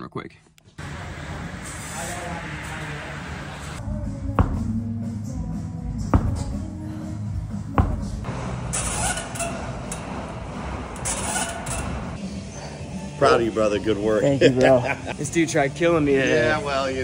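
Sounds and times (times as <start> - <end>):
background music: 3.8 - 17.0
ball thudding on turf floor: 4.3 - 4.9, 6.0 - 6.7, 7.5 - 8.3.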